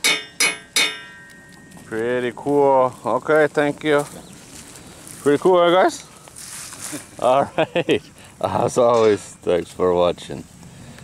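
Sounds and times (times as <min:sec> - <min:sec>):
hammer striking steel saw blade: 0:00.0 - 0:01.4.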